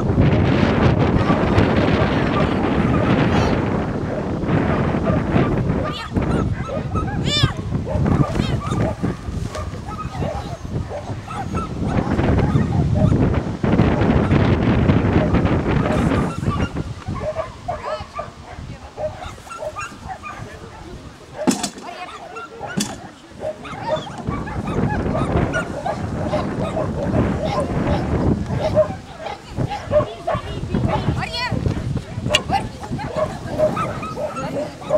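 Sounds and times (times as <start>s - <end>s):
small dog yapping: 5.8s - 9.0s, 9.9s - 12.8s, 15.9s - 18.3s, 21.4s - 31.0s.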